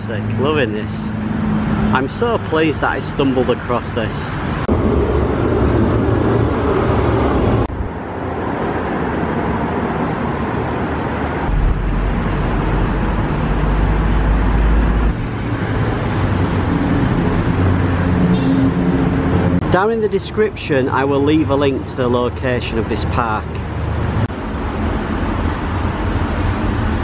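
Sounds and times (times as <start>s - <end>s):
road traffic noise: 0.0s - 27.0s
deep low rumble: 4.6s - 7.9s, 11.4s - 18.2s.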